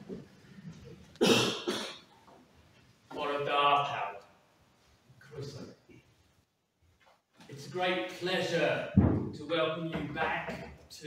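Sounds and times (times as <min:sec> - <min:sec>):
man coughing: 0:01.2 - 0:02.1.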